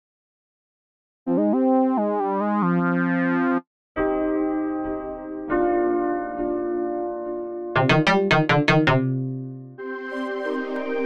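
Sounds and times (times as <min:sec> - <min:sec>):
synthesizer lead notes: 0:01.3 - 0:03.6, 0:07.8 - 0:11.0.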